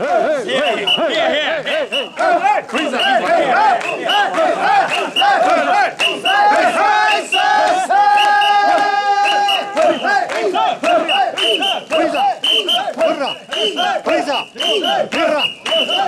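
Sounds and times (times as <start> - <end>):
crowd shouting rhythmic chant: 0.0 - 16.0.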